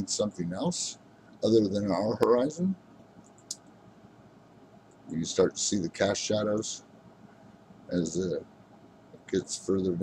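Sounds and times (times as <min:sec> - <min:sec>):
faint room hiss: 0:00.0 - 0:10.0
computer mouse click: 0:03.0 - 0:03.7.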